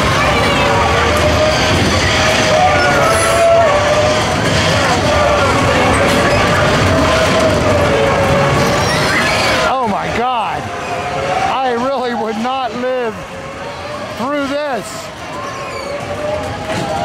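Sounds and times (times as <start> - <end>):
carnival ride mechanical din: 0.0 - 17.0.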